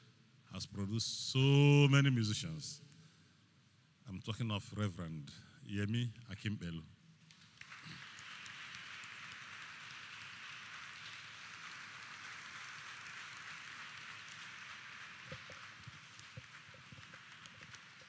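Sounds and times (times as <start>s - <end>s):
audience applauding: 7.3s - 18.0s.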